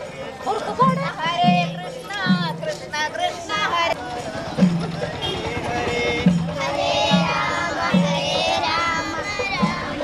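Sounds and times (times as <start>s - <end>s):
quick light percussion: 0.0s - 10.0s
voices singing: 0.0s - 10.0s.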